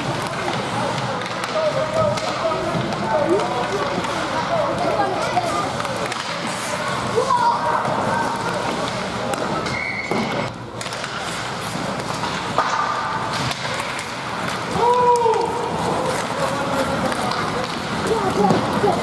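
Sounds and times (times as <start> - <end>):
hockey sticks and puck knocking: 0.0 - 19.0
spectators chatting: 0.0 - 19.0.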